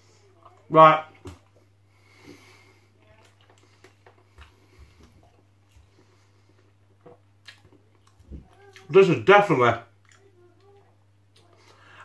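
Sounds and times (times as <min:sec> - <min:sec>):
man chewing food: 0:00.0 - 0:09.0, 0:09.9 - 0:12.0
low steady hum: 0:00.0 - 0:12.0.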